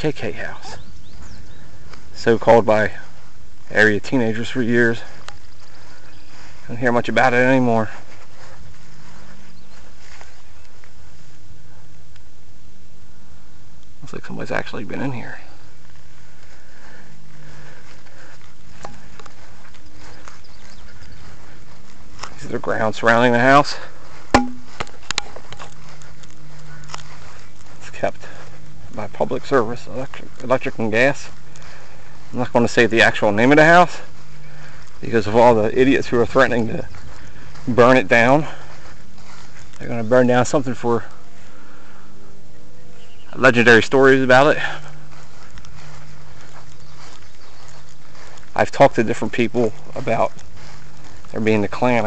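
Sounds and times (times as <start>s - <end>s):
outdoor background hiss: 0.0s - 52.0s
low steady hum: 21.0s - 48.6s.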